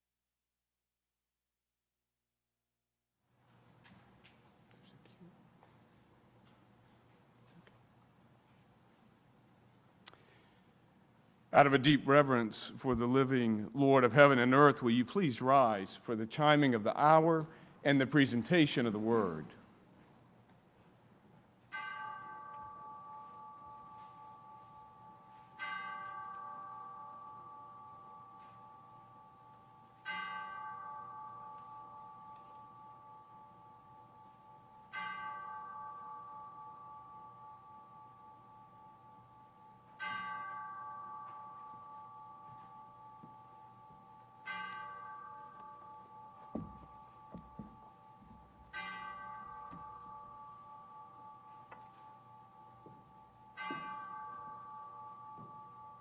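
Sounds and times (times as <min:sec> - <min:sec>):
bell chiming: 0:21.7 - 0:56.0.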